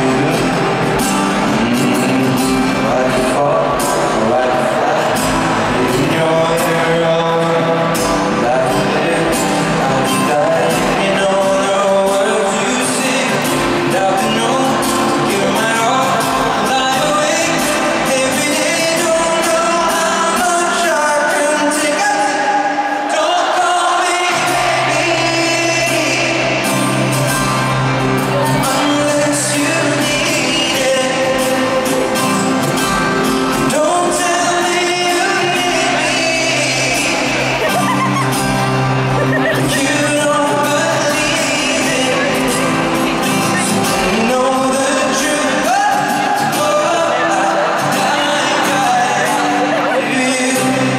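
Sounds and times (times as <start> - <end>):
acoustic guitar: 0.0 - 50.9
live band playing: 0.0 - 50.9
male lead vocal: 0.0 - 50.9
man singing pop ballad: 0.0 - 50.9.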